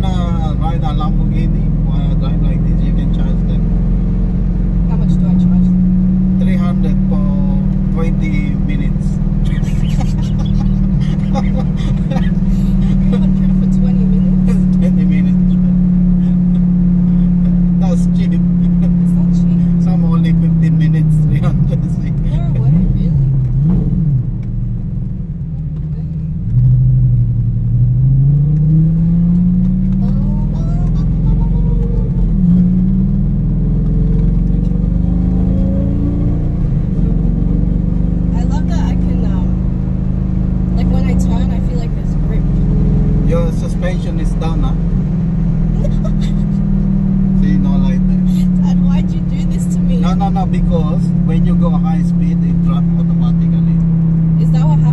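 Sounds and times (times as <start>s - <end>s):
car engine heard from inside cabin: 0.0s - 54.9s.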